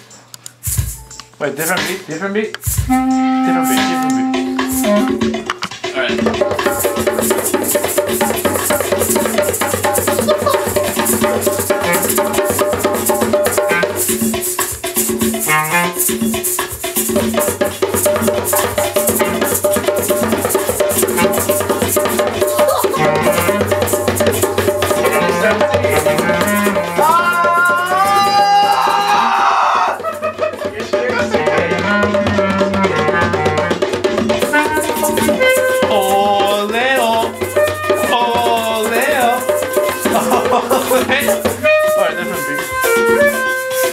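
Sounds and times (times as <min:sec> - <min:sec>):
backing beat with low notes: 0:00.0 - 0:28.7, 0:30.0 - 0:43.9
shaker rattling: 0:00.0 - 0:29.2, 0:34.2 - 0:43.9
djembe struck with hands: 0:00.6 - 0:43.9
clarinet melody: 0:02.8 - 0:05.6, 0:10.1 - 0:14.4, 0:15.2 - 0:16.4, 0:20.8 - 0:28.4, 0:31.3 - 0:40.6, 0:41.2 - 0:43.9.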